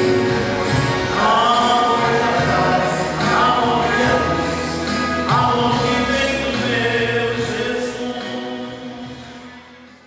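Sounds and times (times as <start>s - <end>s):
choir singing religious music: 0.0s - 9.6s.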